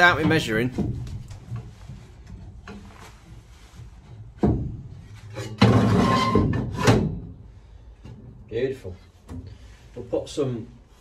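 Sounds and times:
metallic scraping clatter: 5.2 - 7.1.

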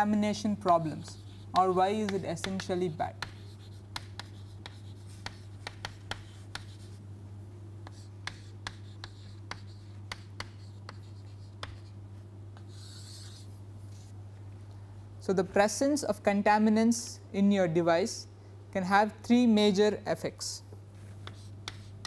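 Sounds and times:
steady low hum: 0.0 - 22.0
chalk tapping and scratching on chalkboard: 0.4 - 7.0, 7.8 - 12.0, 12.6 - 14.2, 21.0 - 22.0.

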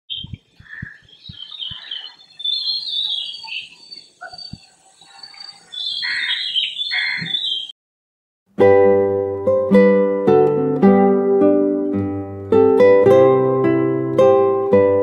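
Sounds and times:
wild birds chirping: 0.1 - 7.8.

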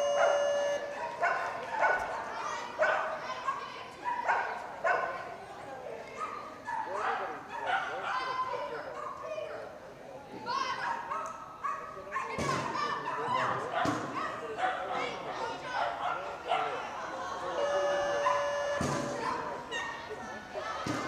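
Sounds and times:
people's voices and calls: 0.0 - 21.0
small dog barking and yipping: 18.2 - 20.1.

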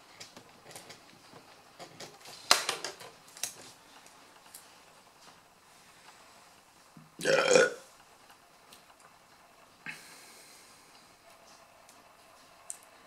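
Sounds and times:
man burping: 7.2 - 7.8.

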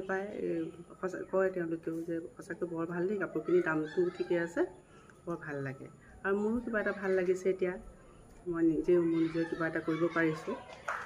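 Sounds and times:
woman speaking: 0.0 - 7.8, 8.5 - 10.7.

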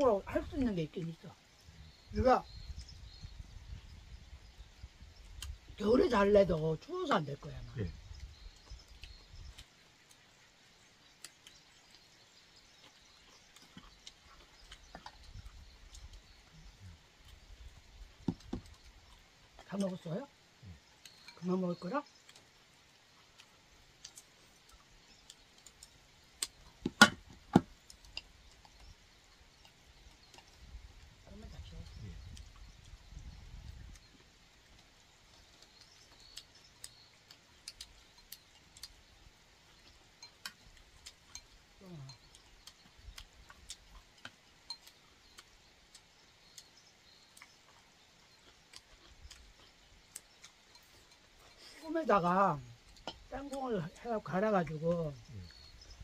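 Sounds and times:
low voice murmuring: 41.8 - 42.2.

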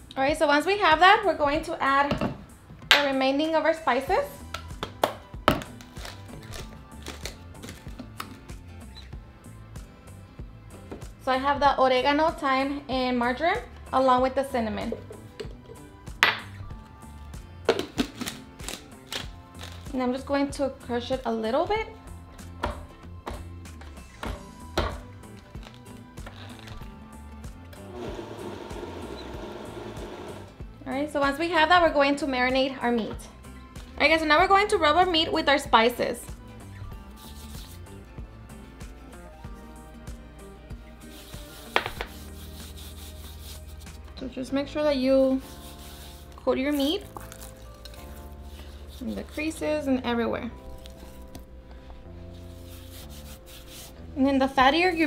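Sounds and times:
soft background music: 0.0 - 55.0
blender grinding: 27.9 - 30.6.

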